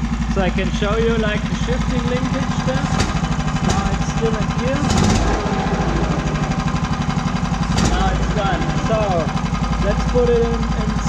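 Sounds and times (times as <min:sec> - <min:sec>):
small petrol engine idling: 0:00.0 - 0:11.0.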